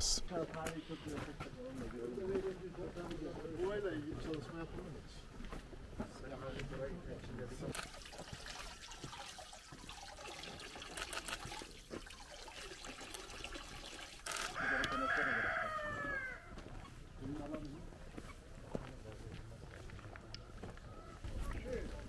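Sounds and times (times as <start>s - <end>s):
water trickling from fountain: 7.3s - 16.3s
rooster crowing: 14.3s - 16.7s.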